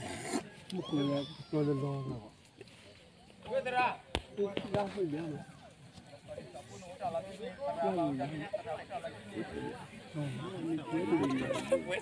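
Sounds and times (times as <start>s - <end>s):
voices in background: 0.0s - 12.0s.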